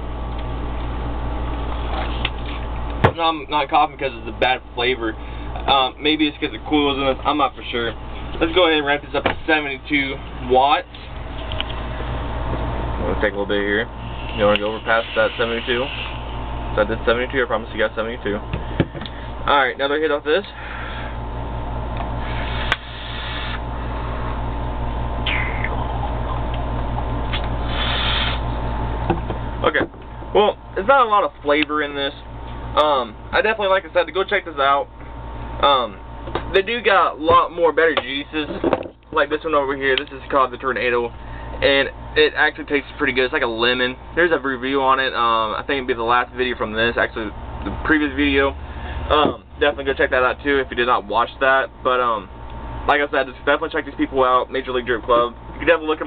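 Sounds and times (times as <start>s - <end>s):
steady low hum: 0.0s - 56.0s
vape airflow hiss: 14.0s - 16.3s, 22.2s - 23.6s, 27.3s - 28.5s.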